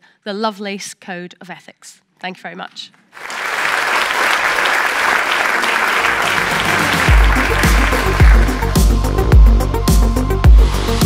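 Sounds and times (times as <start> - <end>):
audience applause: 3.2 - 9.0
electronic music with bass beat: 6.7 - 11.0.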